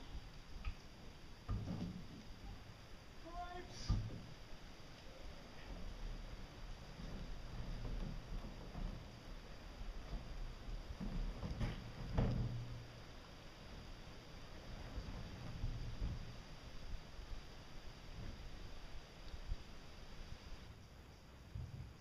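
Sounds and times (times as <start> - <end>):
muffled knocks and scraping: 1.4 - 2.7, 6.8 - 12.9, 14.6 - 16.4.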